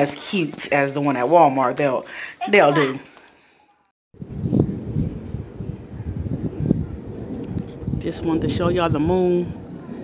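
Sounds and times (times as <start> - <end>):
wind buffeting microphone: 4.2 - 10.0.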